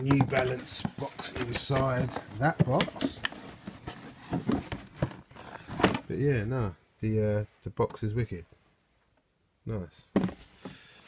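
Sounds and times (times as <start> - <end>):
cardboard boxes being handled: 0.0 - 6.1, 10.2 - 10.8
knocks and scrapes of boxes: 0.0 - 6.1, 10.1 - 10.8.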